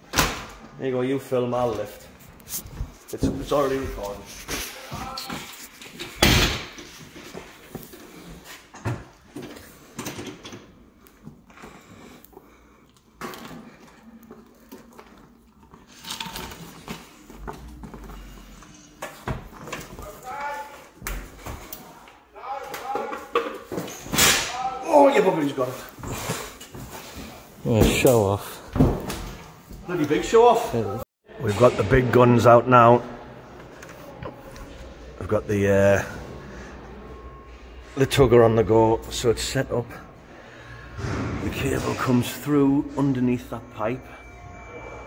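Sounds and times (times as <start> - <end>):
sharp bang: 40.9 - 42.2.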